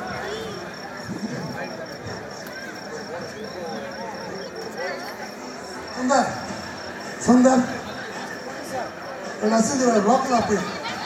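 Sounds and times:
crickets chirping: 0.0 - 11.0
crowd noise: 0.0 - 11.0.

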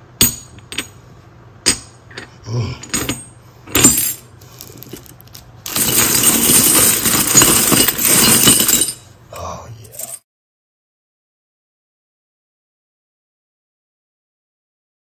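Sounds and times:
coins clinking and jingling: 4.8 - 9.0.

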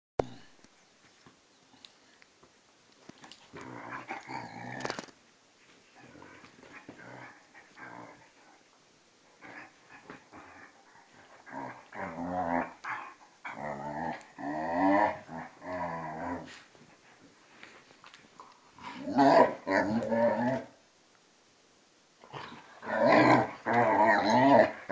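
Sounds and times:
dogs growling playfully: 3.4 - 5.1, 6.0 - 8.4, 9.4 - 16.7, 18.8 - 20.7, 22.2 - 24.9.

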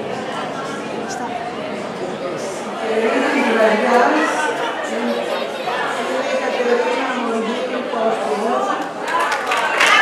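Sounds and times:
people chattering: 0.0 - 10.0
woman speaking into microphone: 2.8 - 5.3, 6.0 - 8.9.

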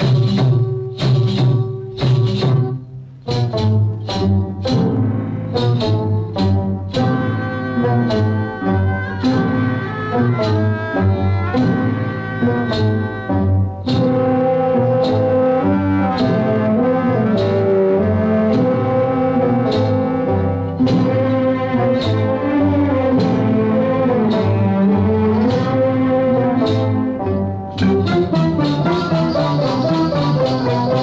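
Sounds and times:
orchestral dance music: 0.0 - 31.0.

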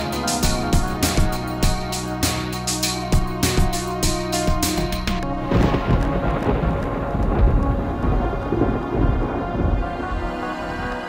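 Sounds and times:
music with sustained tones: 0.0 - 11.0.

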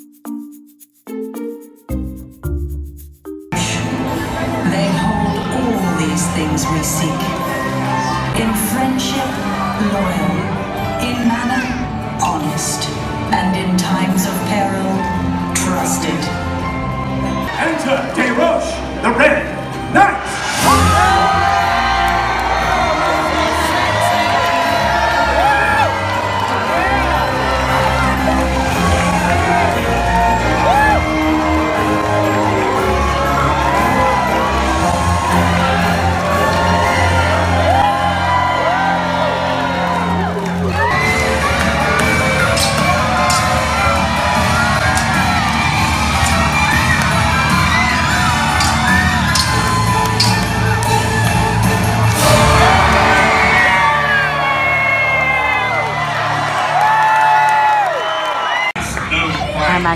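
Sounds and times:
dramatic show music: 0.0 - 57.1
crowd whooping and cheering: 20.4 - 59.8
metallic sword clashes: 48.5 - 50.6.

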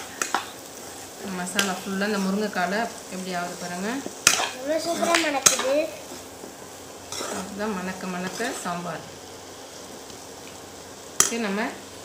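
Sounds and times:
meat sizzling in a pan: 0.0 - 12.0
woman talking: 1.2 - 4.1, 7.4 - 9.0, 11.2 - 11.8.

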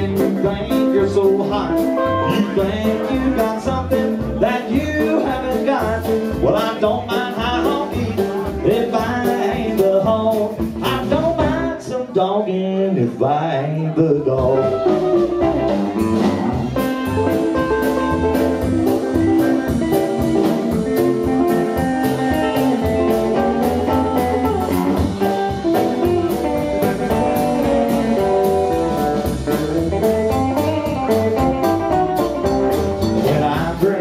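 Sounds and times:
electric guitar lead: 0.0 - 9.6, 14.2 - 34.0
rockabilly band playing: 0.0 - 34.0.

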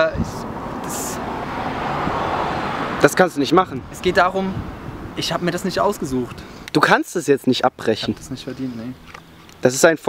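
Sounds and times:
car passing by: 0.3 - 6.5.

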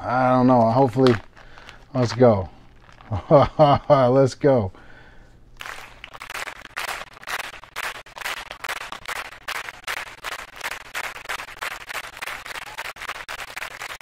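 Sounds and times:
plastic wrapper crinkling: 0.2 - 3.6, 5.6 - 14.0.

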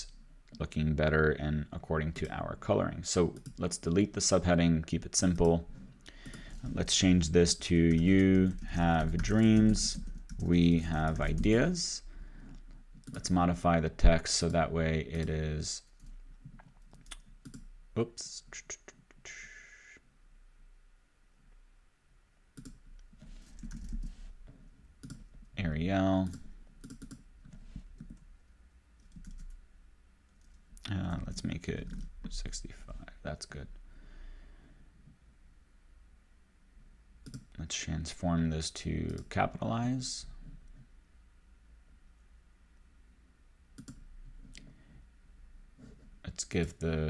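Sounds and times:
faint low hum: 0.0 - 47.0
computer mouse clicks: 16.0 - 17.7, 22.6 - 24.1, 25.0 - 25.2, 26.2 - 28.2, 37.2 - 37.5, 43.8 - 44.7
computer keyboard keystrokes: 23.6 - 24.1, 26.2 - 27.2, 29.0 - 29.6, 43.8 - 44.0.

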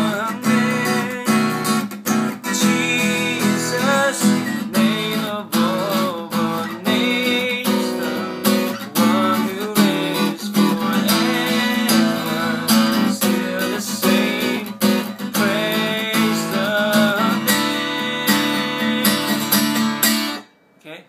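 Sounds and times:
acoustic guitar strumming: 0.0 - 20.6.

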